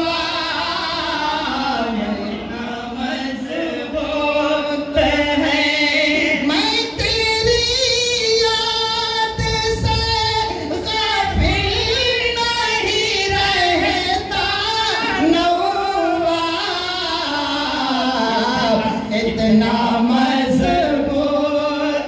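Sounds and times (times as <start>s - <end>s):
man singing into microphone: 0.0s - 22.0s.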